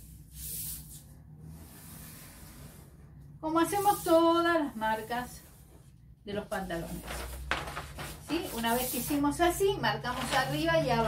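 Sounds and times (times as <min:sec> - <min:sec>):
paper sliding and rustling: 0:06.6 - 0:09.4, 0:10.1 - 0:10.7.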